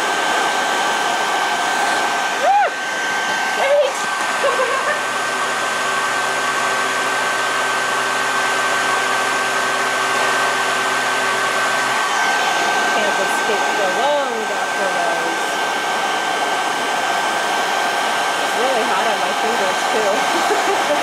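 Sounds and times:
hair dryer blowing: 0:00.0 - 0:21.0.

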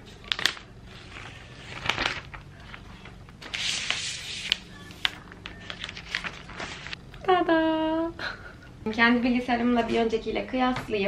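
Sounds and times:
plastic wrap rustling: 0:00.0 - 0:07.0.

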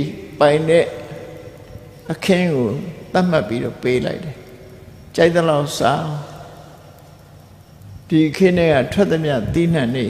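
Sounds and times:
man speaking: 0:00.0 - 0:04.4, 0:05.1 - 0:06.6, 0:08.1 - 0:10.0.

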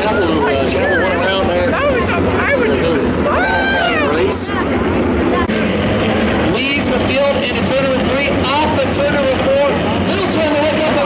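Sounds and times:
race car engines: 0:00.0 - 0:11.0
spectators talking: 0:00.0 - 0:11.0.

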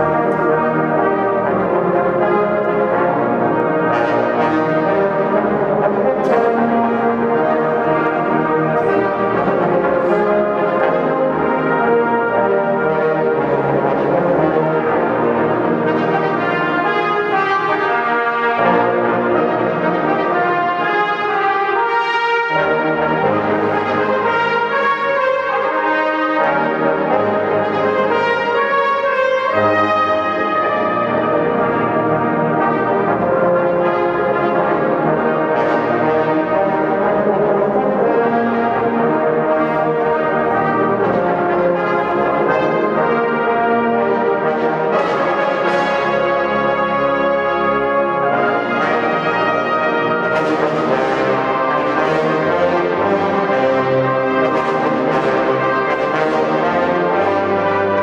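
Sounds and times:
brass band playing: 0:00.0 - 0:58.0.

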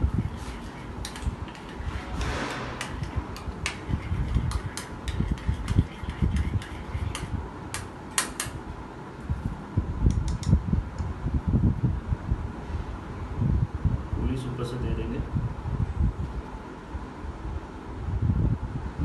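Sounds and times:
fan-like hum: 0:00.0 - 0:19.0.

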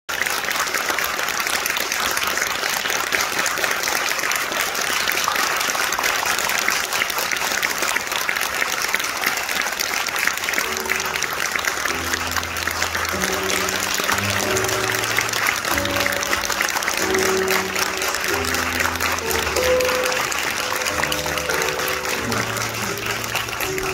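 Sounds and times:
audience applauding: 0:00.1 - 0:23.9.

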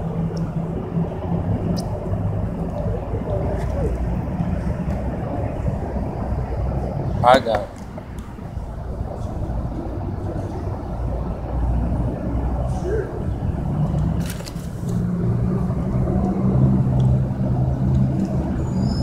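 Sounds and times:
indistinct voices: 0:00.0 - 0:14.1
steady low hum: 0:00.0 - 0:18.6
vehicle engine rumble: 0:00.0 - 0:19.0.

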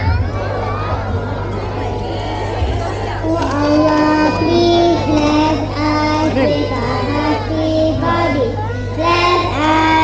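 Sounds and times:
steady low hum: 0:00.0 - 0:10.0
children singing: 0:03.1 - 0:10.0.

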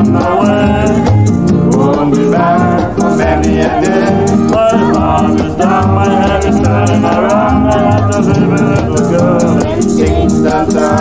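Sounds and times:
calypso band playing: 0:00.0 - 0:11.0
shaker ticking a beat: 0:00.0 - 0:11.0.

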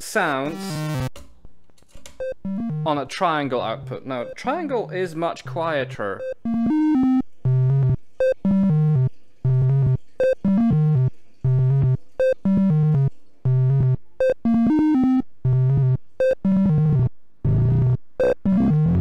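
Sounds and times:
synthesizer sequence of short notes: 0:00.2 - 0:01.1, 0:02.2 - 0:03.0, 0:03.8 - 0:19.0.

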